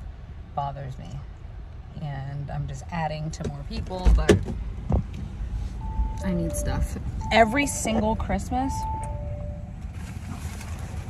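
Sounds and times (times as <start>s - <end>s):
low rumble in car cabin: 0.0s - 11.0s.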